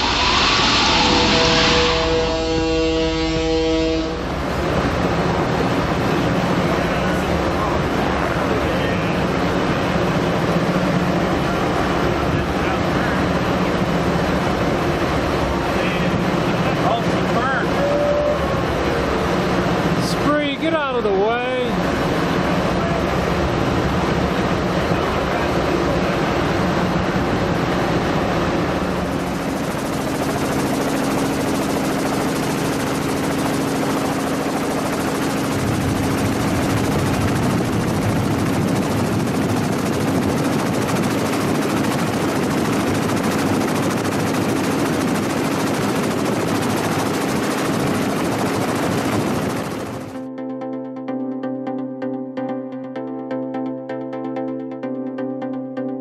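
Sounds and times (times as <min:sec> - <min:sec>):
rush of wind and water: 0:00.0 - 0:50.1
low engine hum: 0:00.0 - 0:50.4
electronic music: 0:49.0 - 0:56.0.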